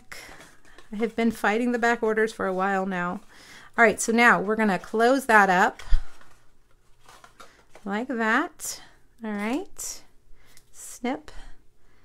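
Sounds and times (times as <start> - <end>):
paper rustling: 0.2 - 7.9.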